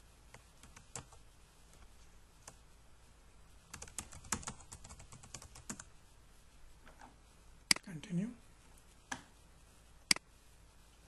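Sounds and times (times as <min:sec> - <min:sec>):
computer keyboard typing: 0:00.3 - 0:01.8, 0:03.7 - 0:05.9.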